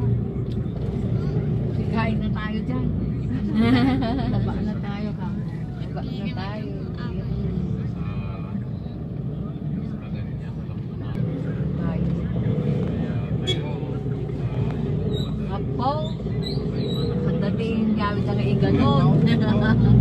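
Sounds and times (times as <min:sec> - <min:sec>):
vehicle engine and road rumble: 0:00.0 - 0:20.0.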